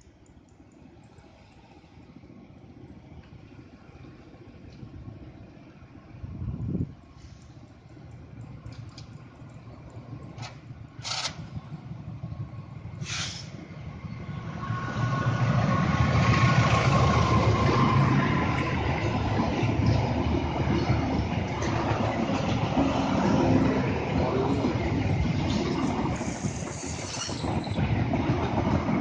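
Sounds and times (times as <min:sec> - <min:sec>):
diesel train passing: 0:00.0 - 0:29.0
train wheels rolling on rails: 0:00.0 - 0:29.0.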